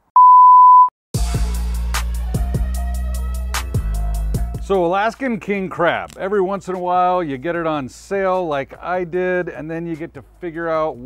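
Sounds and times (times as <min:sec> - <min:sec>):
high-pitched censor bleep: 0:00.1 - 0:00.9
music with deep bass drum: 0:01.2 - 0:04.7.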